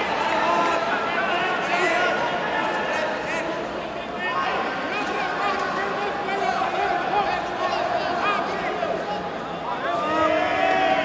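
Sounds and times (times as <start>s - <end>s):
hubbub of many voices: 0.0s - 11.0s.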